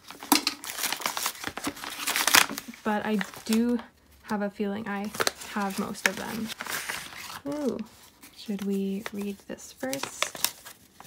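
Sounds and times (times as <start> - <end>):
envelope tearing and crinkling: 0.0 - 3.8, 4.9 - 11.0.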